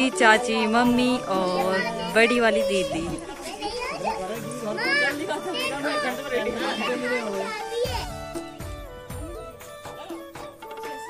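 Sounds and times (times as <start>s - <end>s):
people talking over one another: 0.0s - 8.6s.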